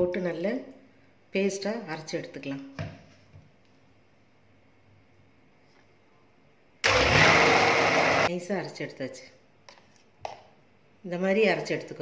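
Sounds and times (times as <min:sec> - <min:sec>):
electric mixer grinder running: 0:06.8 - 0:08.3.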